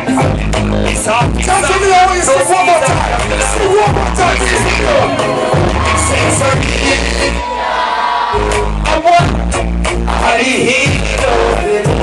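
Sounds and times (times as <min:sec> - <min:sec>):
heavy bass line: 0:00.0 - 0:12.0
reggae dancehall music: 0:00.0 - 0:12.0
vocals: 0:00.0 - 0:12.0.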